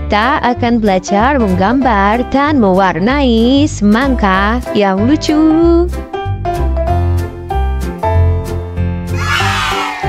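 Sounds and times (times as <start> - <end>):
upbeat children's music: 0.0 - 7.5.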